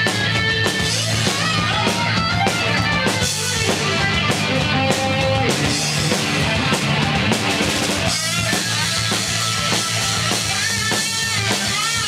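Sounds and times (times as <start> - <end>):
drum kit hits: 0.0 - 12.0
electric guitar: 0.0 - 12.0.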